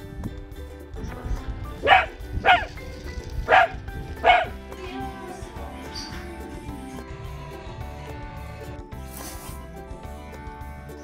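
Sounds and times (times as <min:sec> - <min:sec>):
background music: 0:00.0 - 0:11.0
puppy barking: 0:01.8 - 0:02.8, 0:03.5 - 0:04.6.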